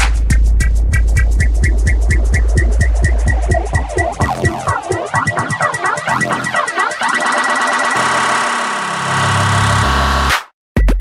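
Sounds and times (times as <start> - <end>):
bass: 0.0 - 4.8
four-on-the-floor kick drum: 0.0 - 5.5
layered synths: 1.0 - 10.3.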